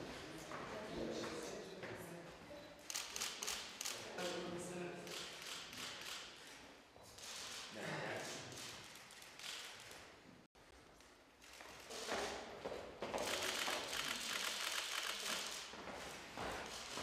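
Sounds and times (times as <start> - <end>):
footsteps: 8.6 - 17.0.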